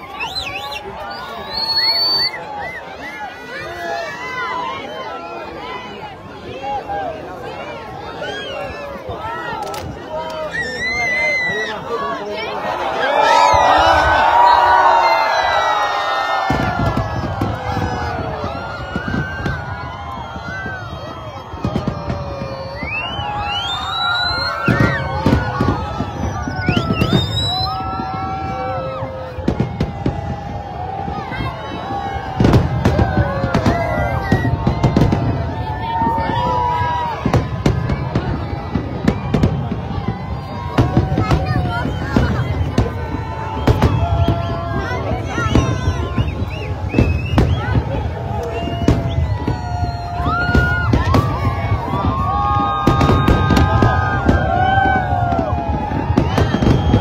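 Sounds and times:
high rising whistles: 0.0 - 3.2, 22.6 - 25.1, 26.1 - 28.0
crowd voices and shouts: 0.0 - 57.0
fireworks bangs: 13.2 - 57.0.

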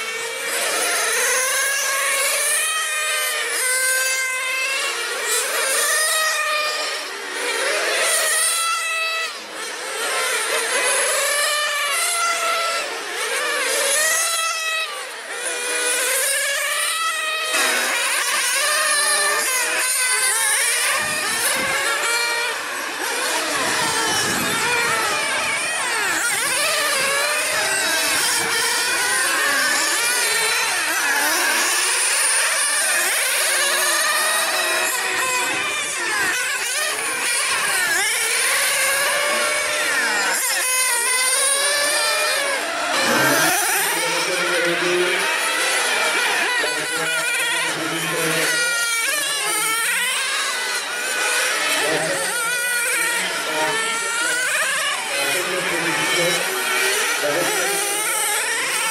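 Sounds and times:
rc car engines whining: 0.0 - 58.9.

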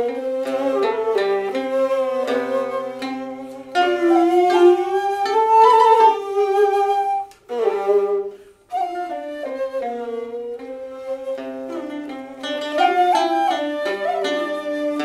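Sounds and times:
end-blown flute melody: 0.0 - 12.1, 12.8 - 15.0
bowed fiddle: 0.0 - 15.0
plucked lute: 0.0 - 15.0.

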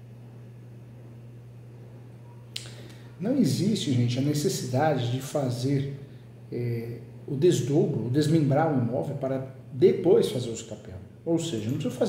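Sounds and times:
low electrical hum: 0.0 - 12.0
sharp click: 2.5 - 3.0
person speaking: 2.6 - 12.0.

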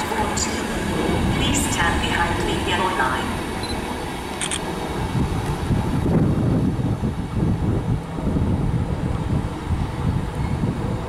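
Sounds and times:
train wheels rumbling on rails: 0.0 - 11.0.

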